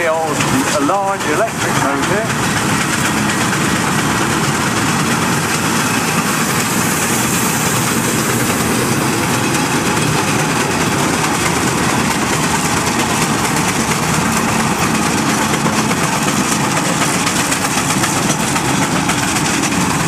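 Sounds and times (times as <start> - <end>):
steam road locomotives working: 0.0 - 20.0.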